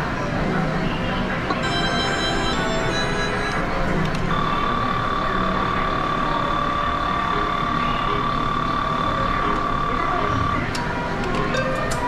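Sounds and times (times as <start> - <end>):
high electronic tone: 1.6 - 5.7.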